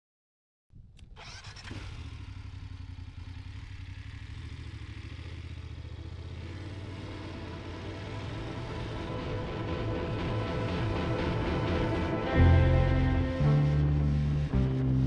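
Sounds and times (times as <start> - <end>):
motorcycle engine running: 1.1 - 15.0.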